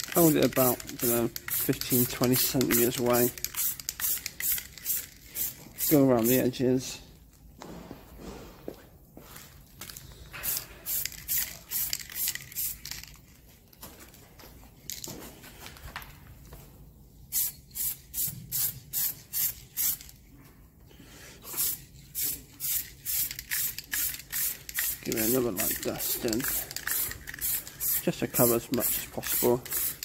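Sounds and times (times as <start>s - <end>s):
spray-paint can hissing bursts: 0.2s - 6.0s, 10.4s - 12.9s, 17.3s - 20.1s, 21.5s - 30.0s.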